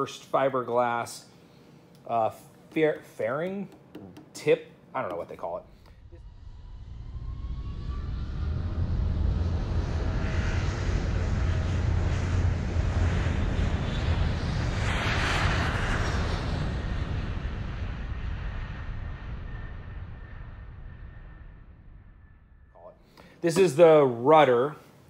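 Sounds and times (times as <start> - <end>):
airplane engine rumble: 5.4 - 24.0.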